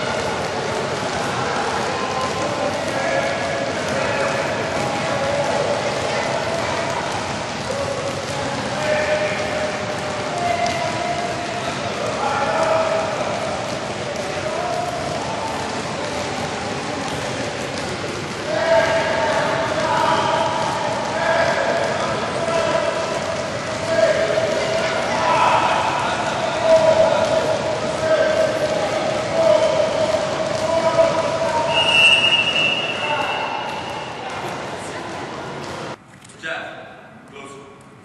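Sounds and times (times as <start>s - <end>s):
basketballs bouncing on hard court: 0.0s - 32.9s.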